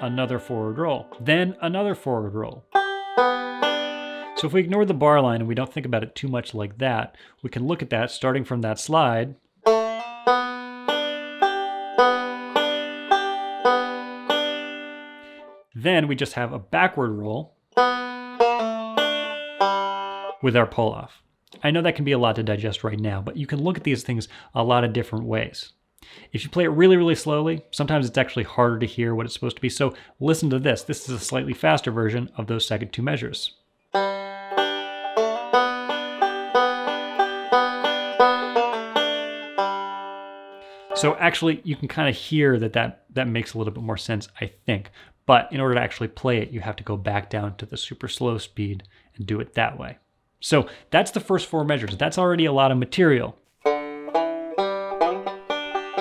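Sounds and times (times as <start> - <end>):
banjo picked slowly: 0.0 - 5.6, 9.6 - 15.6, 17.1 - 20.5, 33.9 - 42.8, 53.6 - 56.0.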